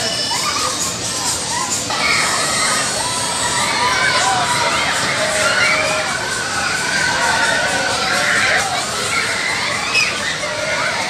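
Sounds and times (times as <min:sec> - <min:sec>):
riders screaming and shouting: 0:00.0 - 0:11.0.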